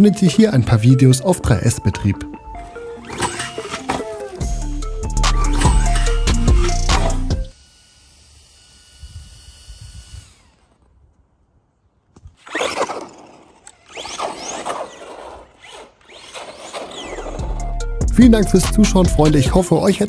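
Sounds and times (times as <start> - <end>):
music: 0.0 - 7.5, 17.1 - 20.0
tyres on asphalt: 0.0 - 8.4, 10.0 - 19.5
electric motor whining: 2.4 - 11.3, 12.2 - 19.6.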